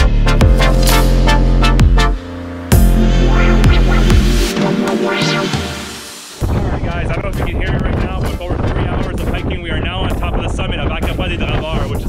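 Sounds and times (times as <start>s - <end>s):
electronic music: 0.0s - 7.0s
man talking: 6.4s - 12.0s.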